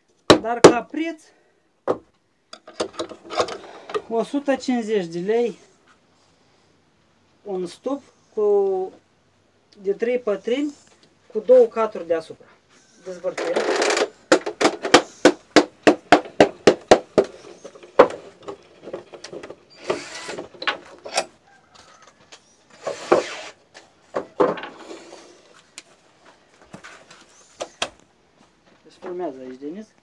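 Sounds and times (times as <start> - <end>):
wooden knocks and scrapes: 13.4 - 28.0.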